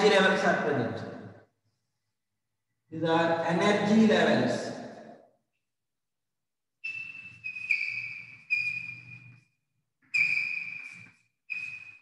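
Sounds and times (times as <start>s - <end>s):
chalk squeaking on chalkboard: 6.8s - 9.5s, 10.1s - 12.0s.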